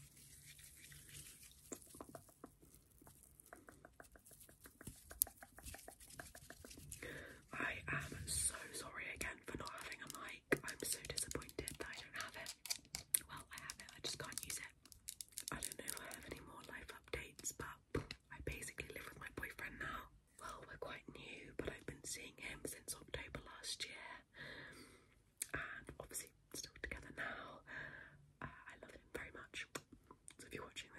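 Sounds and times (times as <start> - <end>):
person whispering: 3.2 - 14.8, 15.5 - 24.2, 25.4 - 27.6, 28.4 - 29.8, 30.4 - 30.9.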